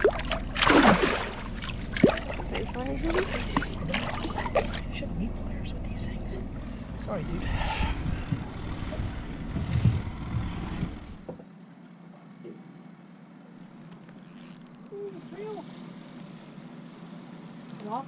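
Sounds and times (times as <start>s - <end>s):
wind and boat rumble: 0.0s - 11.6s.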